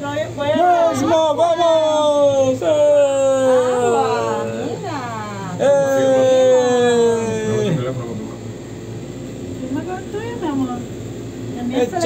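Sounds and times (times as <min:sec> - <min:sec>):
air conditioning hum: 0:00.0 - 0:12.0.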